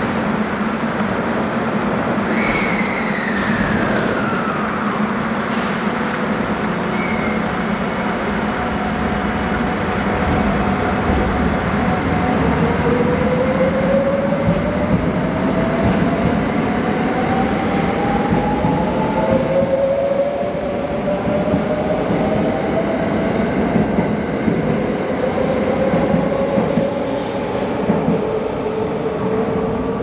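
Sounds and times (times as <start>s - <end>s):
wheels rumbling on rail: 0.0s - 30.0s.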